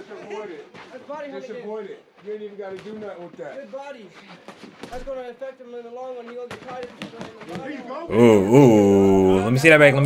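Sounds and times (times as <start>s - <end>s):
men shouting: 8.1s - 9.7s.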